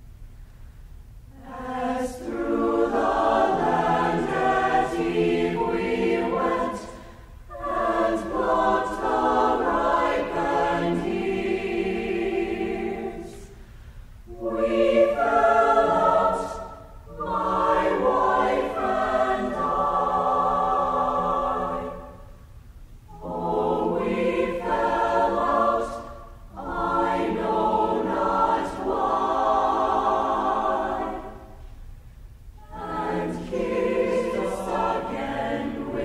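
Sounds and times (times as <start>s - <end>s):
choir singing a cappella: 1.3s - 22.5s, 23.1s - 31.7s, 32.6s - 36.0s.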